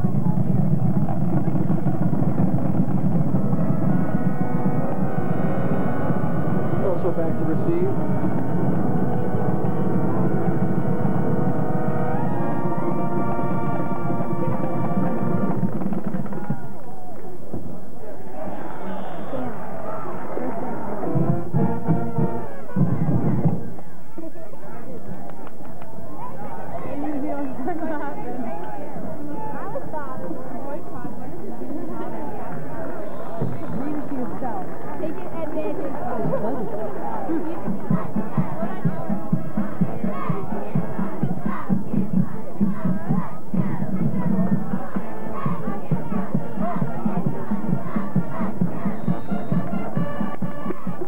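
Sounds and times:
band playing held notes: 0.0 - 16.0, 19.6 - 23.6
drum beats: 0.0 - 16.8, 20.1 - 23.9, 32.0 - 51.0
crowd chanting and shouting: 0.0 - 51.0.

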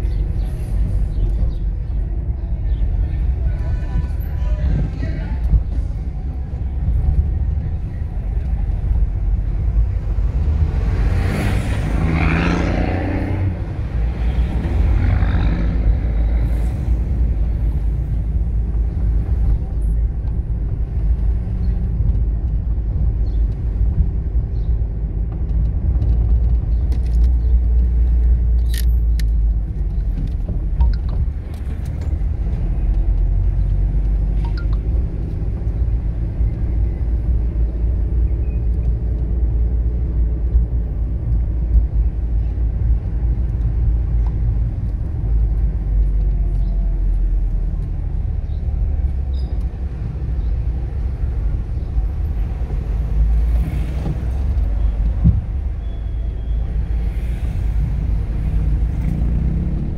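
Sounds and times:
car engine and road rumble: 0.0 - 59.9
vehicle passing: 10.0 - 17.8, 56.9 - 59.9.

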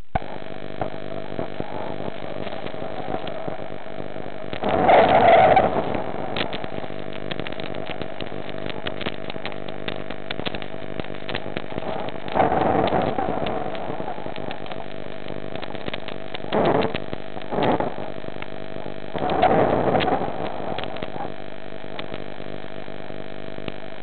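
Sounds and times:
rush of noise: 0.0 - 24.0
steady electrical hum: 0.0 - 24.0
faint clicks: 0.1 - 24.0.

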